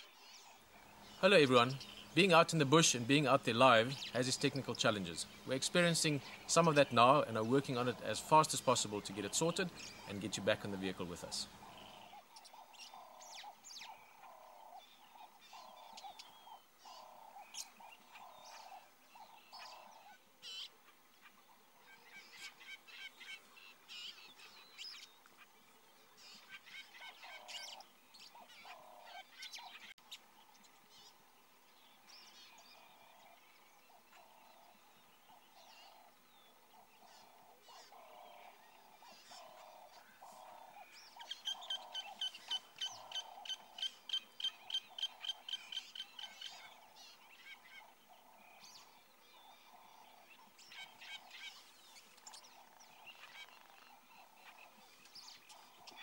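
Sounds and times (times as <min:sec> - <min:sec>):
higher bird chirps: 0:00.0 - 0:20.8, 0:31.9 - 0:56.0
soft low bird calls: 0:00.0 - 0:56.0
fast sharp bird calls: 0:36.8 - 0:48.9.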